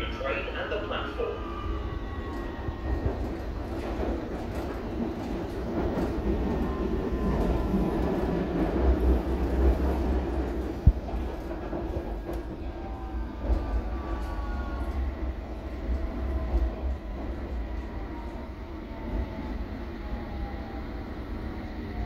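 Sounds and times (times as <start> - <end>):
train wheels rumbling on rail: 0.0 - 22.0.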